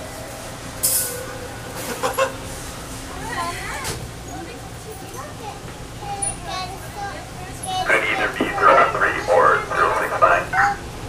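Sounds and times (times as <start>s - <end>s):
subway car equipment humming: 0.0s - 11.0s.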